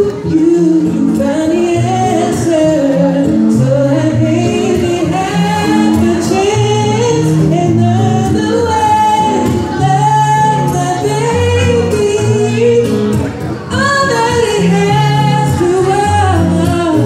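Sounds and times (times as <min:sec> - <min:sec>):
man singing into microphone: 0:00.0 - 0:17.0
strummed acoustic guitar: 0:00.0 - 0:17.0.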